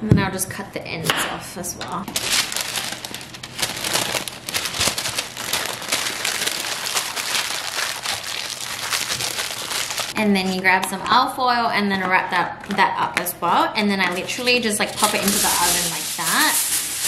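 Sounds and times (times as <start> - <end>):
baking paper crinkling: 2.0 - 10.7, 14.0 - 17.0.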